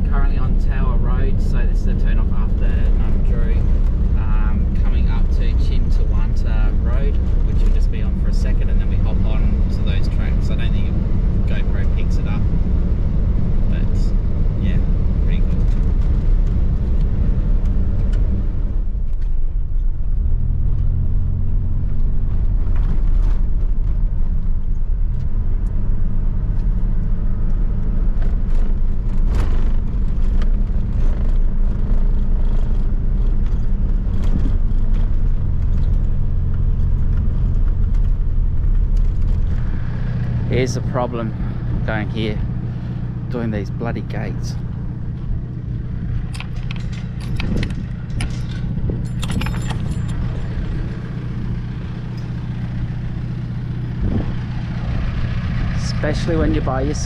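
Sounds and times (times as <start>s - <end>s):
engine and tyres rumbling: 0.0s - 57.0s
rattles and knocks: 44.6s - 55.8s.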